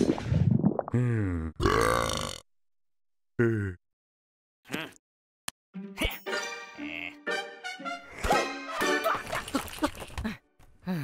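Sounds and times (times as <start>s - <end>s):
cartoon monster burping: 1.3s - 2.5s, 3.4s - 3.8s.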